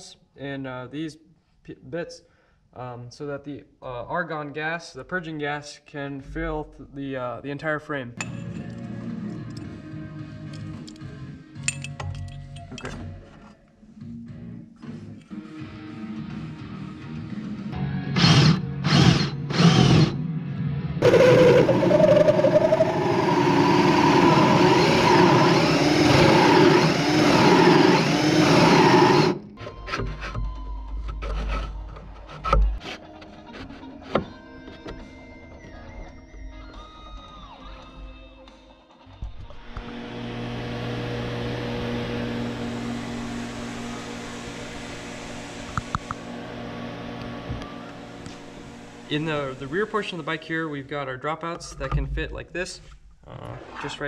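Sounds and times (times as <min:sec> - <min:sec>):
background music: 0:08.2 - 0:22.6, 0:28.7 - 0:39.7
cordless drill cutting wood: 0:18.1 - 0:20.2, 0:21.0 - 0:29.6, 0:39.6 - 0:49.6.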